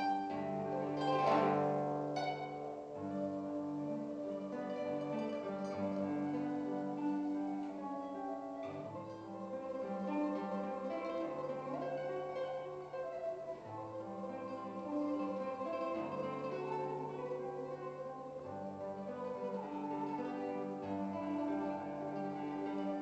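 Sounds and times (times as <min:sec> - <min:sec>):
fingerstyle classical guitar: 0:00.0 - 0:23.0.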